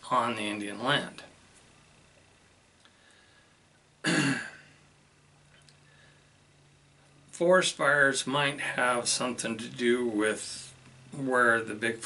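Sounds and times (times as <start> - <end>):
man clearing throat: 4.0 - 4.7.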